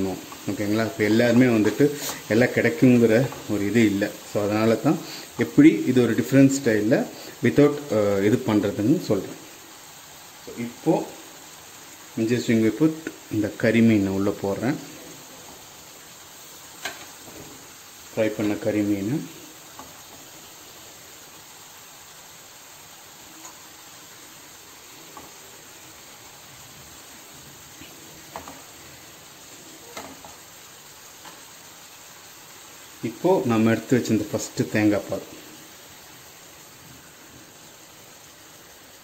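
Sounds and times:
gravy sizzling in a pan: 0.0s - 39.0s
spatula tapping: 28.3s - 28.7s.

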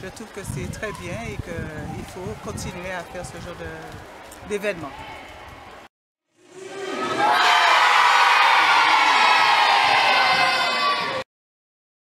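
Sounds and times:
children shouting and cheering: 6.5s - 11.2s.

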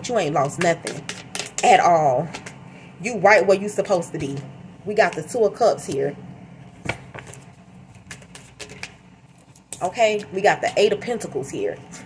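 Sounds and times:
playing cards shuffling: 6.9s - 9.8s.

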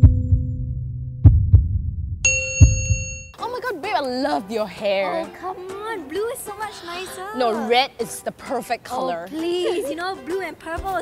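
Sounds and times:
heavy heartbeat-like thumps: 0.0s - 3.2s
low hum: 0.0s - 3.3s
bright bell-like ding: 2.2s - 3.4s
woman speaking: 3.4s - 10.2s.

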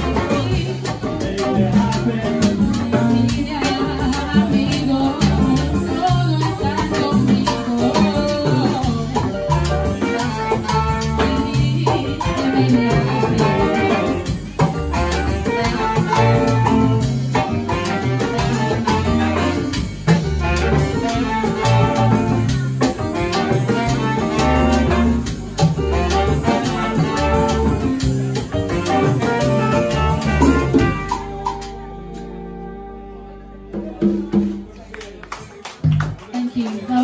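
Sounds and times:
pulsing bass guitar line: 0.0s - 34.0s
live salsa band: 0.0s - 37.0s.

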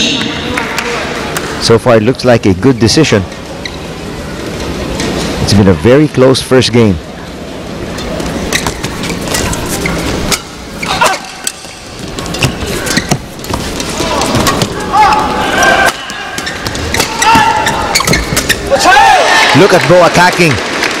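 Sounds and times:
crowd noise in a hall: 0.0s - 21.0s.

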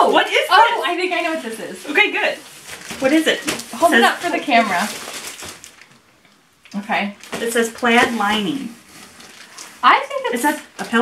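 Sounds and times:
woman speaking: 0.0s - 2.4s, 3.0s - 5.0s, 6.7s - 8.8s, 9.8s - 11.0s
plastic wrapping crinkling: 0.1s - 11.0s.

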